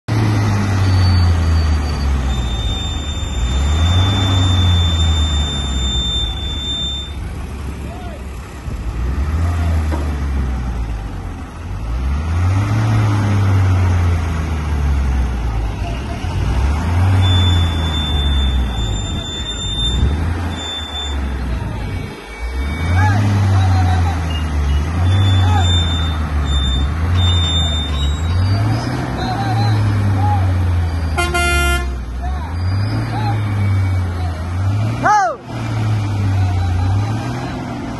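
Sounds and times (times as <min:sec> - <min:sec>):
crane diesel engines revving: 0:00.1 - 0:37.9.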